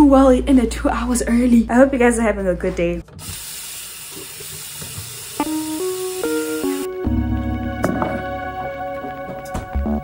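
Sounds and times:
tap water running into sink: 3.1s - 6.9s
background music of held chords: 5.4s - 10.0s.

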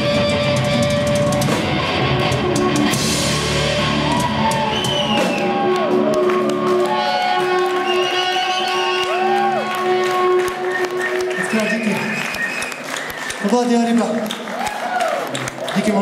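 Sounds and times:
rock band final chord: 0.0s - 4.6s
audience shouting and whooping: 3.6s - 11.8s, 14.4s - 16.0s.

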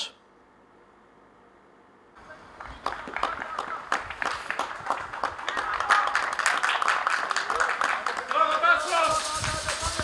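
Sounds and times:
voices: 2.2s - 10.0s
small group applauding: 2.3s - 10.0s.

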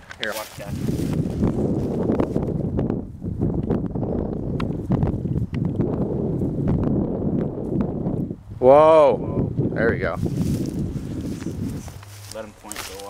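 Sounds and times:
rustling of dry grass: 0.0s - 8.3s, 10.0s - 13.0s.

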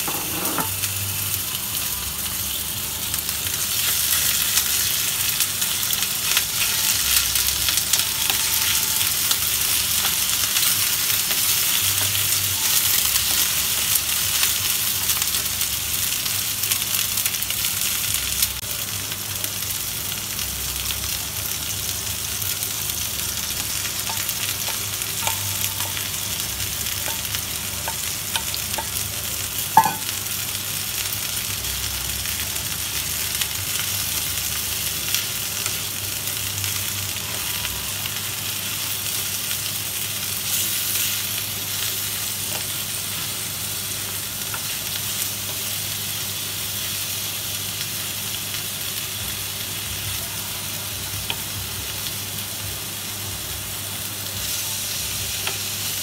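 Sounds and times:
food sizzling in oil: 0.0s - 56.0s.

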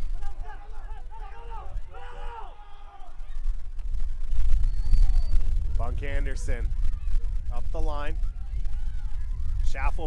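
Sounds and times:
distant shouting voices: 0.0s - 3.6s
wind buffeting microphone: 0.0s - 10.0s.

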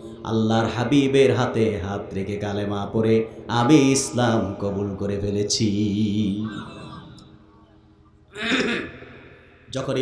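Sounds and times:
man clearing his throat: 8.3s - 9.1s.

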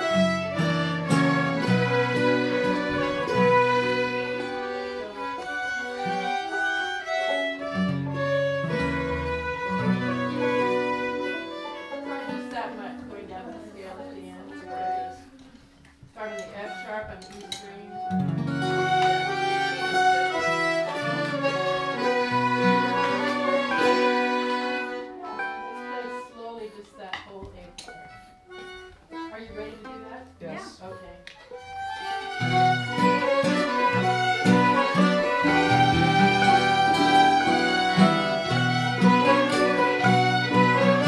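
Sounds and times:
fiddles playing a waltz: 0.0s - 41.0s.

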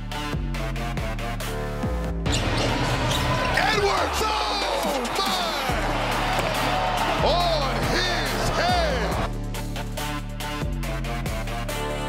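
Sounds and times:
background music with bass: 0.0s - 12.0s
sneakers squeaking on hardwood: 2.3s - 3.6s
crowd noise: 2.5s - 9.3s.

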